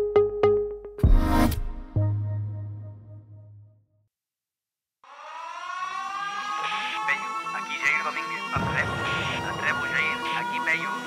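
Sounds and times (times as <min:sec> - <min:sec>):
air-raid siren rising: 0:05.0 - 0:11.0.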